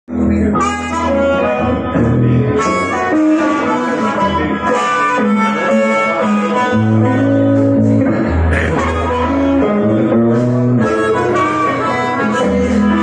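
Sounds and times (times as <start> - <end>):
electric guitar accompaniment: 0.1 - 13.0
amplified harmonica: 0.3 - 13.0.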